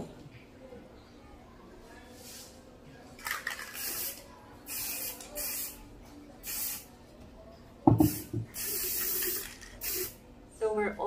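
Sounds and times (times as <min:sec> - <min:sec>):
aerosol can spraying: 0:03.6 - 0:05.8, 0:06.4 - 0:06.8, 0:08.0 - 0:10.2.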